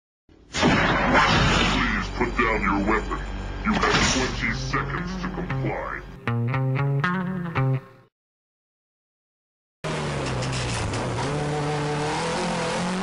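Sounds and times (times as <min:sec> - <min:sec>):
music-like tones: 0:04.2 - 0:08.0
car engine revving: 0:09.8 - 0:13.0.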